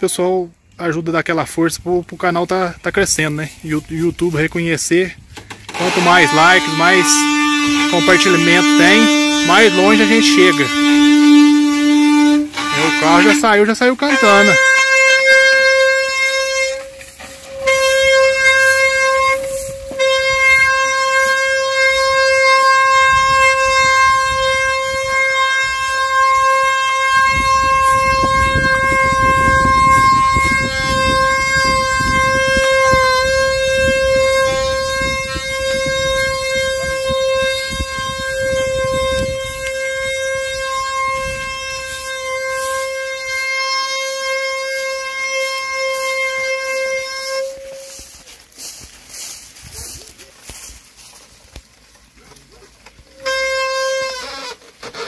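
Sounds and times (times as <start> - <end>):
wooden cart axle whining: 5.2 - 55.0.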